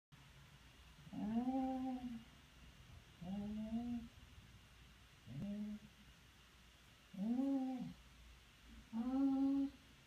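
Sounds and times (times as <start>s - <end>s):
dog whining: 1.1s - 2.2s, 3.2s - 4.1s, 5.3s - 5.9s, 7.1s - 8.0s, 8.9s - 9.8s.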